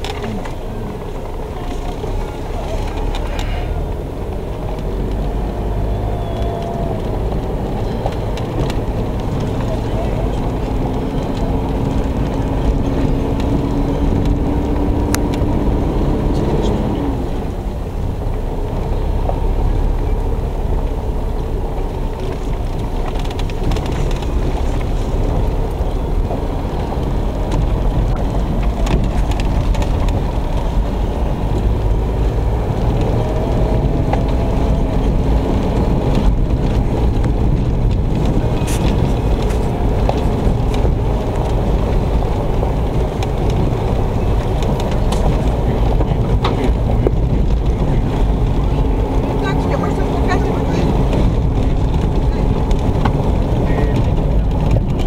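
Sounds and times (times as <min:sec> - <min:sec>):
car tyres rumbling on gravel: 0:00.0 - 0:55.0.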